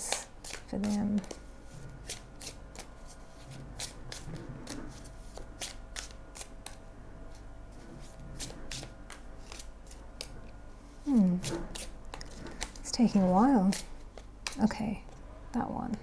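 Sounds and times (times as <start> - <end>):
cards being shuffled: 0.0 - 10.4, 11.1 - 14.7.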